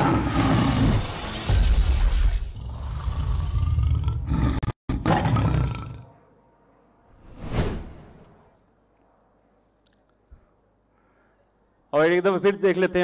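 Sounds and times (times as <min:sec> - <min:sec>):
tiger roar effect: 0:00.0 - 0:06.2
whoosh: 0:07.1 - 0:08.5.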